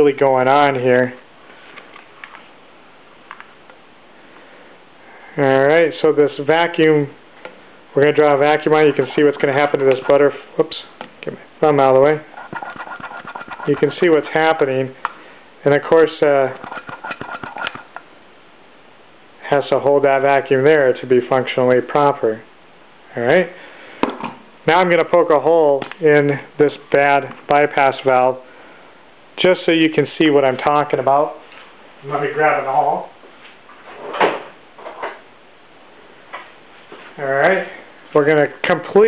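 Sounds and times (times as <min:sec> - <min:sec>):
faint steady background: 0:00.0 - 0:39.0.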